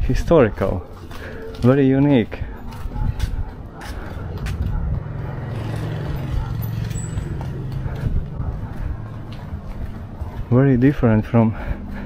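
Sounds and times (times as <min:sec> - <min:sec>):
low engine hum: 0:02.9 - 0:10.6.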